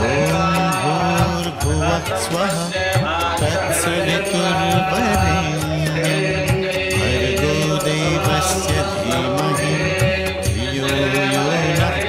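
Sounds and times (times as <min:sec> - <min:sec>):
chanted vocals: 0:00.0 - 0:12.0.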